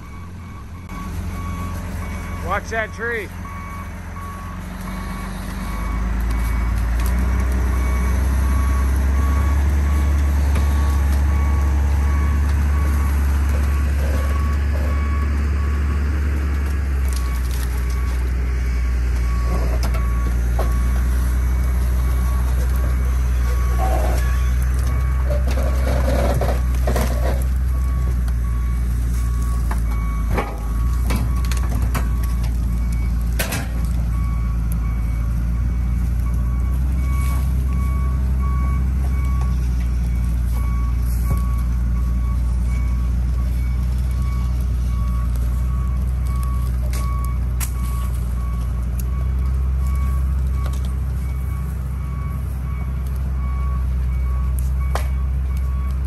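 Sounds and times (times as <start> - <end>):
diesel engine running under load: 0.0 - 56.0
reversing alarm beeping: 0.0 - 56.0
branches cracking and snapping: 4.6 - 56.0.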